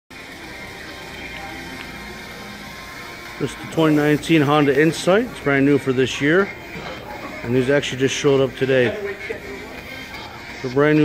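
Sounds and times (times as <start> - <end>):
faint background music: 0.1 - 11.0
room noise: 0.1 - 11.0.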